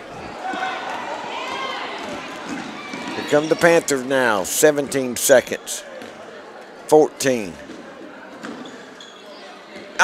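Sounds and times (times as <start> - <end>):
crowd voices humming: 0.0 - 10.0.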